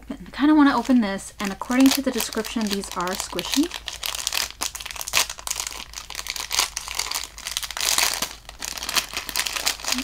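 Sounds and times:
plastic bag crinkling: 0:00.6 - 0:10.0.

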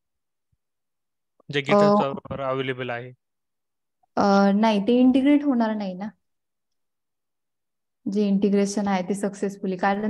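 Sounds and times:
person speaking on a call: 0:01.4 - 0:03.2.

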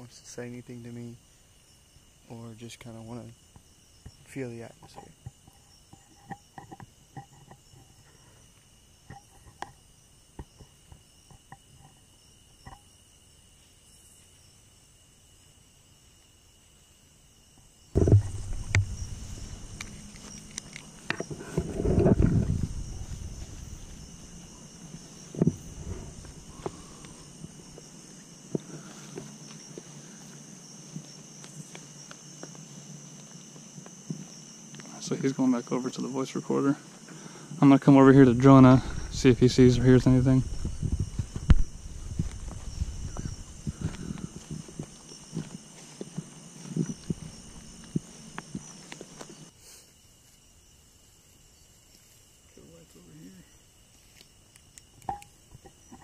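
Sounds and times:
night insects chirping: 0:00.0 - 0:56.0
steady hiss: 0:00.0 - 0:56.0
low rumbling and crackling noise: 0:18.0 - 0:35.1, 0:38.1 - 0:49.5.

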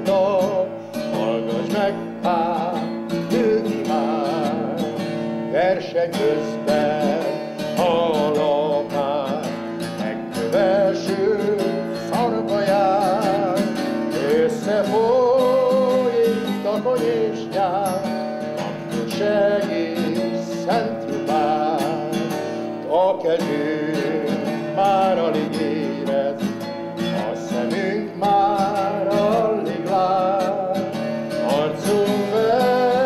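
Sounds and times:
man singing: 0:00.0 - 0:33.0
strummed acoustic guitar: 0:00.0 - 0:33.0.

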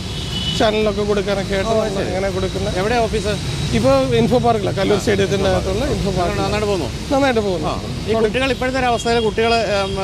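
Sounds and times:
men talking: 0:00.5 - 0:10.0.

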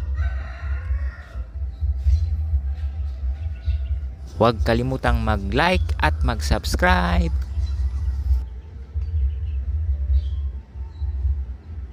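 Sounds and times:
rooster crowing: 0:00.0 - 0:01.7
low rumble: 0:00.0 - 0:11.9.

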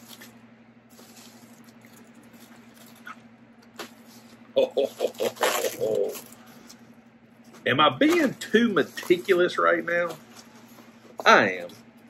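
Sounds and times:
bubble wrap crinkling: 0:00.0 - 0:06.7
steady low hum: 0:00.0 - 0:12.0.

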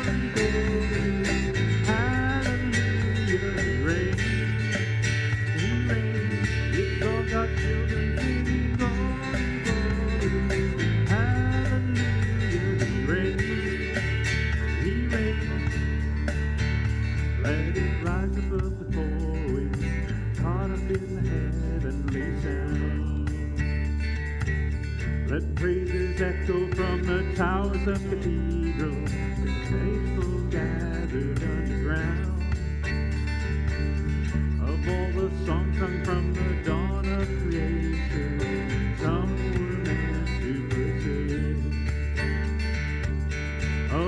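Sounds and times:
person singing: 0:00.0 - 0:24.0, 0:25.2 - 0:44.0
drums: 0:00.0 - 0:44.0
electric and acoustic guitars: 0:00.0 - 0:44.0.

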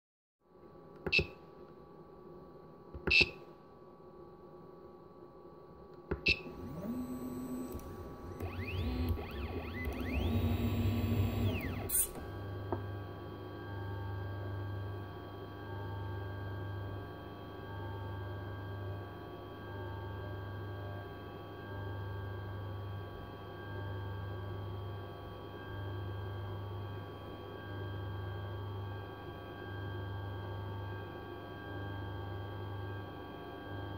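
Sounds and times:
motor hum with pulsing low tone: 0:06.3 - 0:33.9
stepper motors whining: 0:06.5 - 0:12.4.

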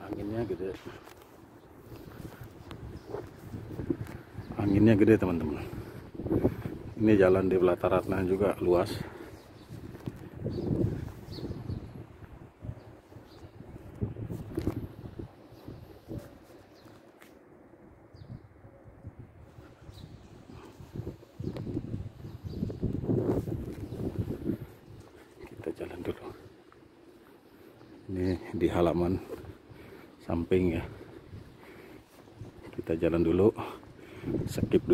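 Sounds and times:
wind gusting on microphone: 0:00.0 - 0:34.9
faint footsteps on paving: 0:00.1 - 0:12.4, 0:13.2 - 0:17.5, 0:20.7 - 0:34.5.

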